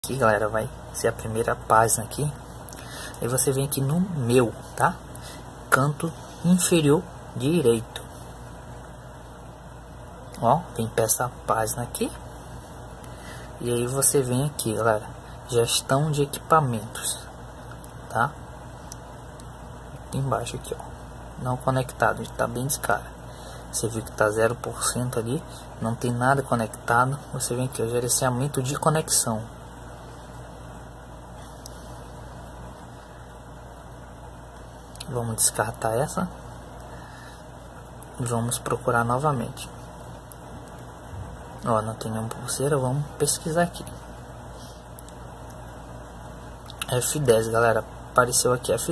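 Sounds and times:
low background hum and hiss: 0:00.0 - 0:48.9.

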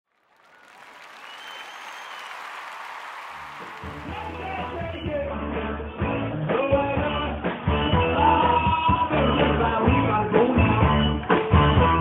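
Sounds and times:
crowd applause: 0:00.0 - 0:05.2
long high whistle: 0:00.6 - 0:02.5
rock band playing: 0:03.8 - 0:12.0.

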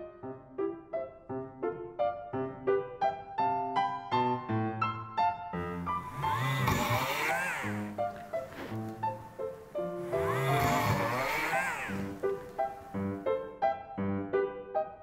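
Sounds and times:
piano music: 0:00.0 - 0:15.0
rotary tool drilling metal: 0:06.0 - 0:08.0, 0:10.0 - 0:12.9.

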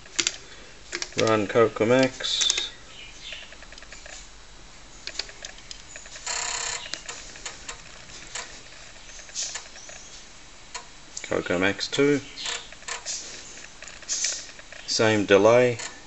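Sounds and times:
disk drive clicks: 0:00.0 - 0:04.2, 0:05.0 - 0:10.1
floppy disk drive ticking: 0:00.0 - 0:04.2, 0:05.0 - 0:11.3, 0:12.0 - 0:16.0
disk drive buzz: 0:00.0 - 0:11.2, 0:12.0 - 0:16.0.

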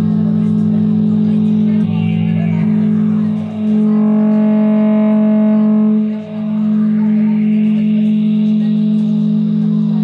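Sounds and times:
band playing amplified drone: 0:00.0 - 0:10.0.

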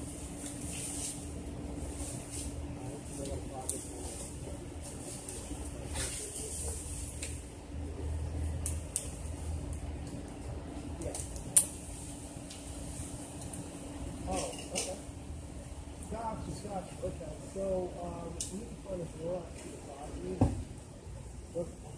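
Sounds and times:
low steady background rumble: 0:00.0 - 0:21.9.

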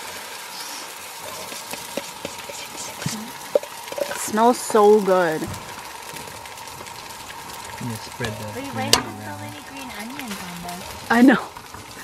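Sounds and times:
batter sizzling in a pan: 0:00.0 - 0:12.0
utensil knocking against pan: 0:08.2 - 0:09.6.

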